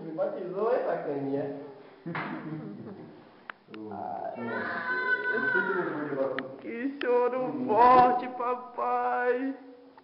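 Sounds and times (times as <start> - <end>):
newborn baby crying: 3.9 - 6.3.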